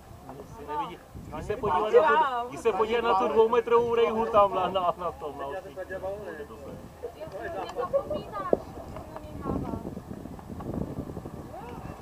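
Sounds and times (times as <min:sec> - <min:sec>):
wind noise on microphone: 0:00.0 - 0:04.6, 0:06.3 - 0:12.0
people talking indistinctly: 0:00.3 - 0:10.0.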